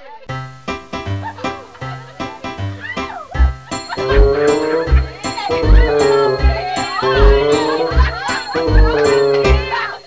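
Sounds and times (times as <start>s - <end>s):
title music with steady beat: 2.4s - 10.0s.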